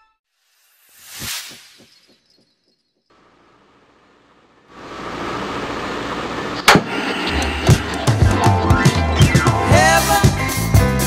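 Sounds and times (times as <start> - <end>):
radio static hiss: 3.2 - 9.2.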